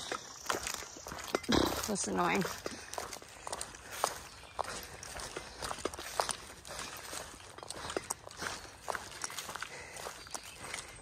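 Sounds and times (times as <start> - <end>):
footsteps on forest trail: 0.0 - 11.0.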